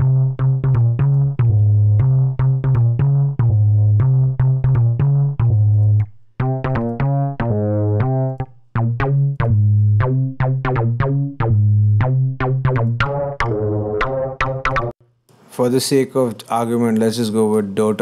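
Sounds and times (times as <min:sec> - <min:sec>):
synthesizer bass line: 0:00.0 - 0:15.0.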